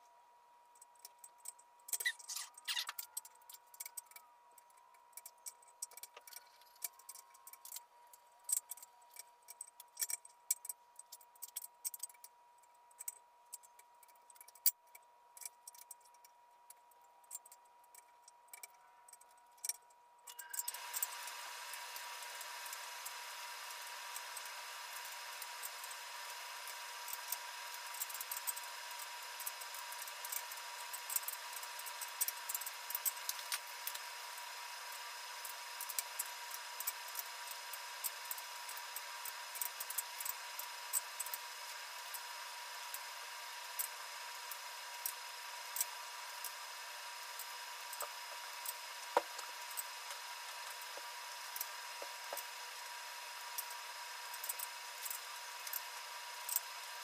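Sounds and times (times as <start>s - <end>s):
steady hiss with high tone: 20.3s - 57.0s
ratchet wrench clicking: 23.8s - 34.0s, 35.4s - 41.4s.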